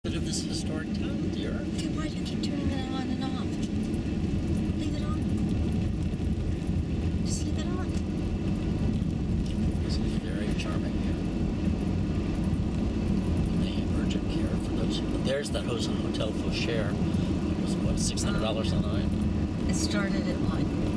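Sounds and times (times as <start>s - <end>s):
car engine and tyres rumbling: 0.0s - 20.9s.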